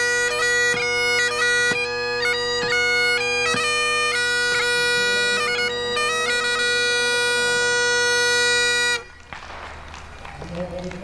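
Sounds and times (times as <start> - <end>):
bagpipe with drones: 0.0 - 9.4
faint outdoor background noise: 0.0 - 11.0.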